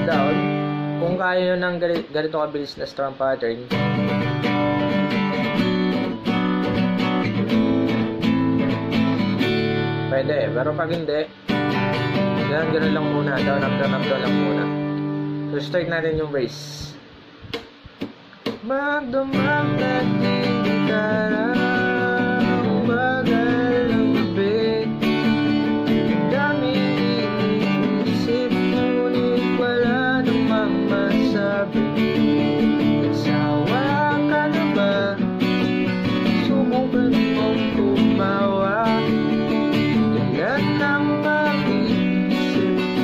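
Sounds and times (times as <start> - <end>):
acoustic guitar strumming: 0.0 - 43.0.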